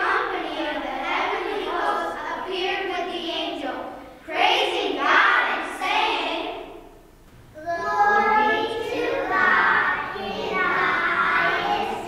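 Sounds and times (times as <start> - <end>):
children singing in unison: 7.6 - 12.0.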